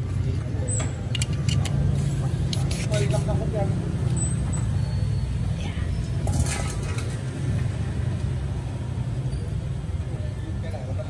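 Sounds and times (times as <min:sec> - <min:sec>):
hand tool scraping clicks: 0:01.1 - 0:01.8.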